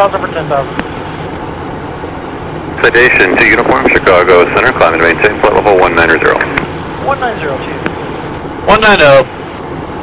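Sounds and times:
low engine hum: 0.0s - 10.0s
radio voice: 2.8s - 6.6s.

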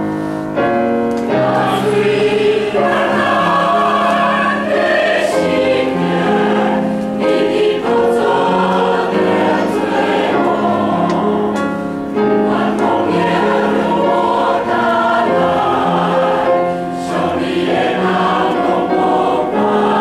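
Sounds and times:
choir singing a hymn: 1.3s - 20.0s.

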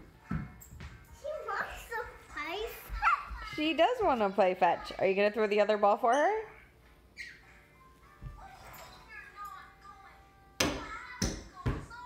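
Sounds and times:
tennis ball bouncing on floor: 10.6s - 11.9s.

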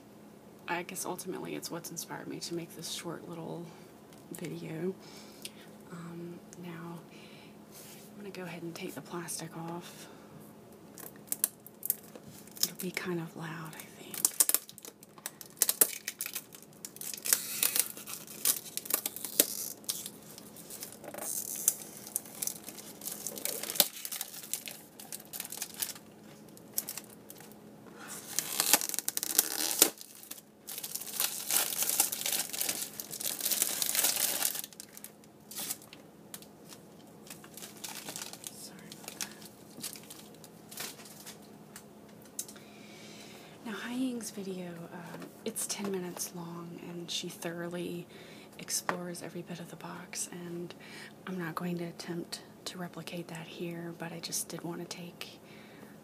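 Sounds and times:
plastic wrap crinkling: 10.9s - 13.0s, 13.6s - 41.5s.

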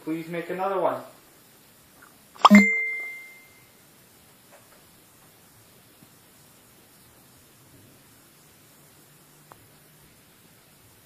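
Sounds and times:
bell-like ding: 2.4s - 3.7s.

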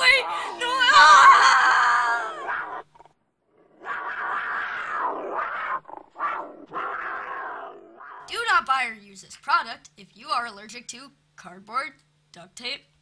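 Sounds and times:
dog growling: 2.2s - 8.3s.

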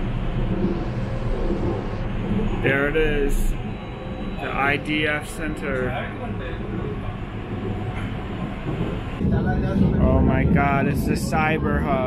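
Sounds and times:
train running rumble: 0.0s - 12.0s.

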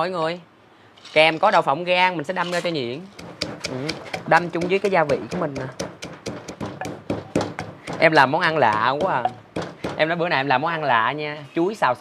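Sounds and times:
wooden pestle pounding in mortar: 3.1s - 10.2s.

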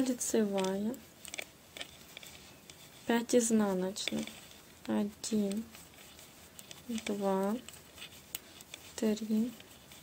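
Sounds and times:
knitting needles clicking: 0.0s - 10.0s.

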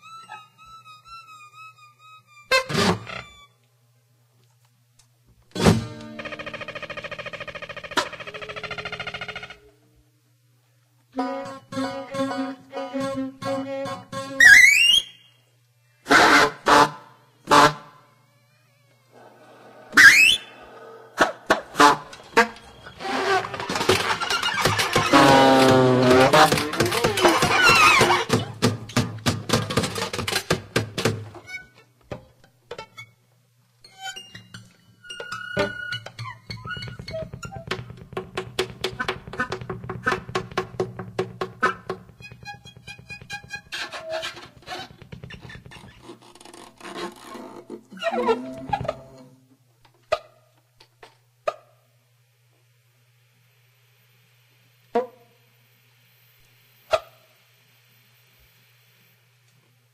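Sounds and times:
steady low hum: 32.4s - 49.8s.

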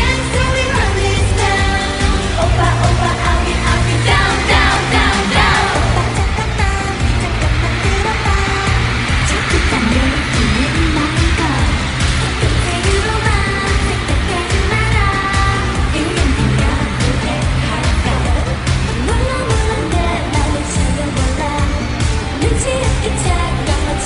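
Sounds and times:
girl group singing: 0.0s - 24.0s
pop backing track with heavy beat: 0.0s - 24.0s.

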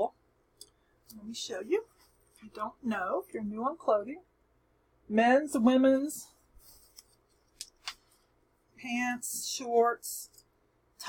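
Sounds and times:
woman speaking: 1.1s - 4.3s, 5.1s - 6.4s, 8.8s - 10.4s.

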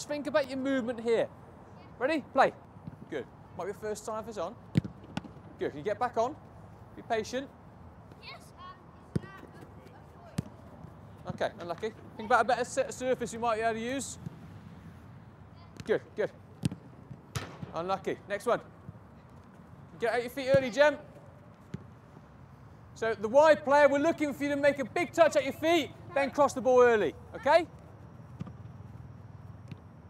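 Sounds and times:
football kick thuds: 4.7s - 5.4s, 10.2s - 10.6s, 16.6s - 17.8s
child calling: 8.2s - 9.6s.

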